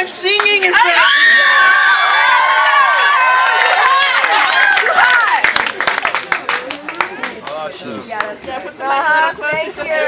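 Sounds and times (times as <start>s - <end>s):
audience cheering and whooping: 0.8s - 5.6s
audience clapping: 2.7s - 8.4s.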